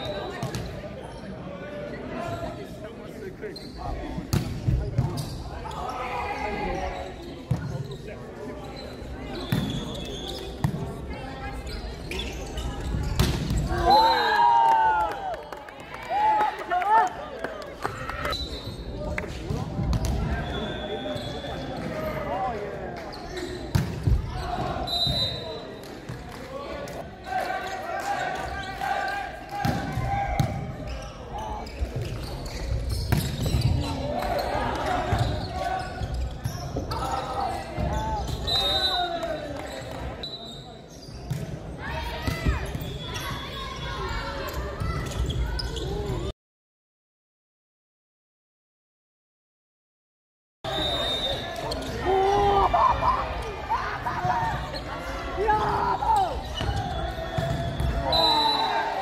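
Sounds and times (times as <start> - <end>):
voices calling in echoing hall: 0.0 - 46.3, 50.7 - 59.0.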